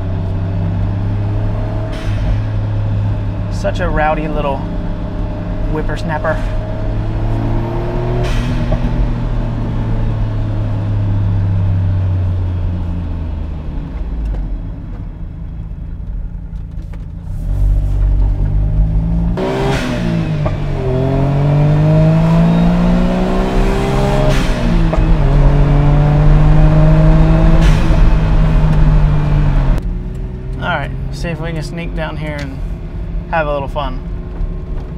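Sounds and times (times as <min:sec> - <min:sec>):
car engine revving with upshifts: 0:00.0 - 0:33.3.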